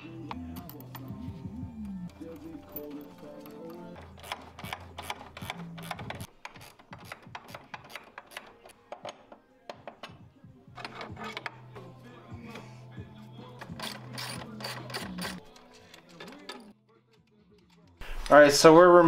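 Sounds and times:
ratchet wrench clicking: 4.0 - 8.5, 13.6 - 16.1.

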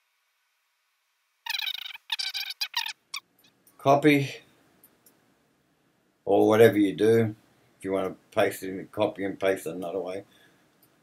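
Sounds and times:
high-pitched squeaking: 1.5 - 3.3.

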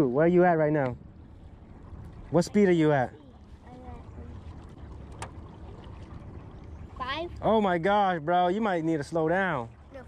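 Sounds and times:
water and wind along hull: 0.0 - 10.0.

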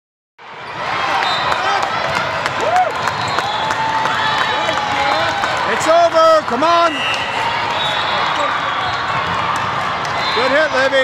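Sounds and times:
crowd chatter: 0.4 - 11.0
sneakers squeaking: 0.6 - 1.5, 3.1 - 3.7.

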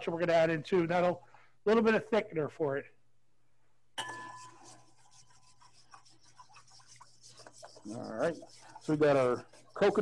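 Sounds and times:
utensil scraping cookware: 4.0 - 10.0.

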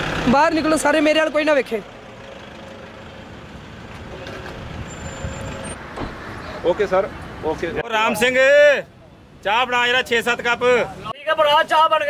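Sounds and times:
road traffic rumble: 0.0 - 11.2.

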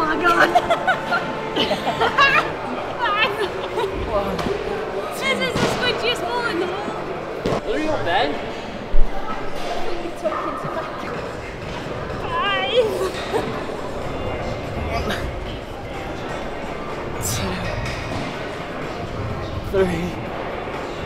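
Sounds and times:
echoing indistinct voices: 0.0 - 21.0.

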